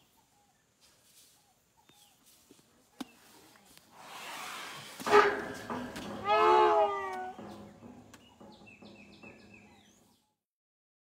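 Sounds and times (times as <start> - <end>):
elephant high-pitched call: 4.2 - 7.4.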